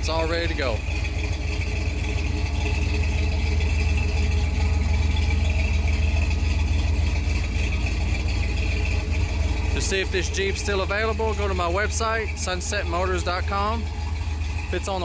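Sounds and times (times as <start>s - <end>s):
engine idling rumble: 0.0s - 15.0s.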